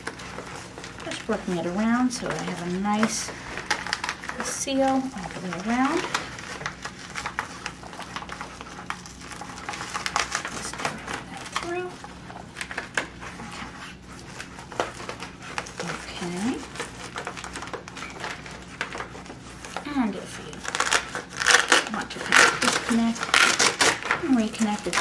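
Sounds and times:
velcro strip crackling: 0:00.0 - 0:19.9, 0:20.5 - 0:25.0.

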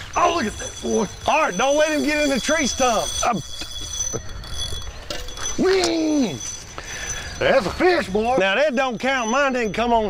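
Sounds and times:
fishing reel ticking: 0:00.0 - 0:10.0.

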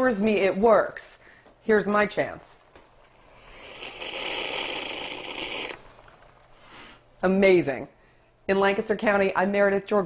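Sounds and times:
hissing slurp through straw: 0:03.2 - 0:07.0.

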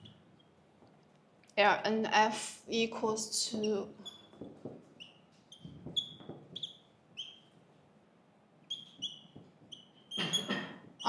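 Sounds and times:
marker squeaking on whiteboard: 0:00.0 - 0:00.7, 0:03.5 - 0:07.8, 0:08.6 - 0:11.0.

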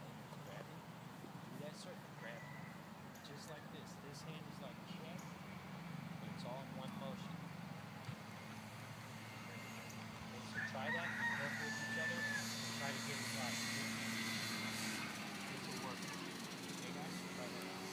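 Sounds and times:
rooster crowing: 0:02.2 - 0:03.0, 0:10.4 - 0:12.8.

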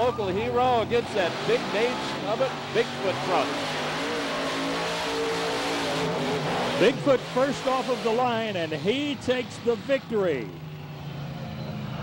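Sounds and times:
monster truck engines at full throttle: 0:00.0 - 0:12.0
commentator calling out: 0:06.8 - 0:10.6.

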